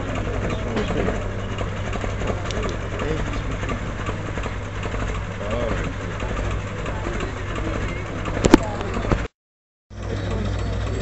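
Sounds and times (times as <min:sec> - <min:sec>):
truck engine droning at low speed: 0:00.0 - 0:09.3, 0:09.9 - 0:11.0.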